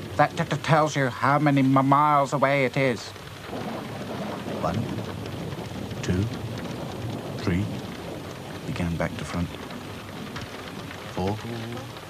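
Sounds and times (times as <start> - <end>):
low rumble of thunder: 0.0 - 12.0
steady rain: 0.0 - 12.0.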